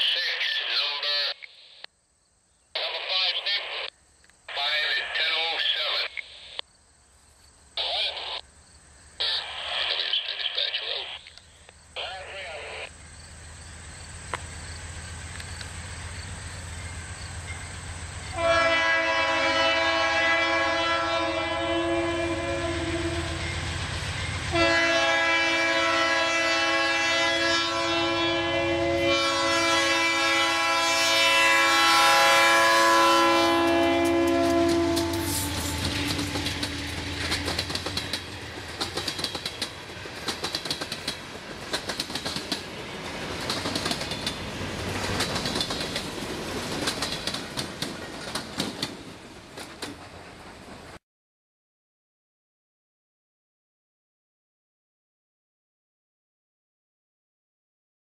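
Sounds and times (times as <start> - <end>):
locomotive air horn blasts: 18.3 - 23.5, 24.5 - 37.7
train wheels clattering over rails: 35.8 - 51.0.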